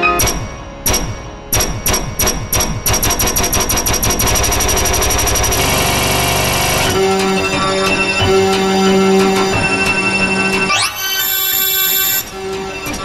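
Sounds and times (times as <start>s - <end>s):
loud held piano chords: 0.0s - 10.9s
dense piano note clusters: 0.0s - 11.0s.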